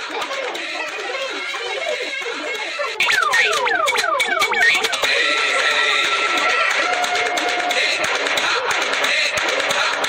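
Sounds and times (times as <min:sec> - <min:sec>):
music: 0:00.0 - 0:10.0
steady held tones: 0:02.9 - 0:05.6.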